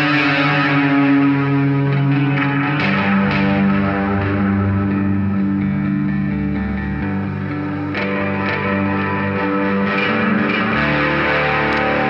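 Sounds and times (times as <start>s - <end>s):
electric guitar chords ringing: 0.0s - 12.0s.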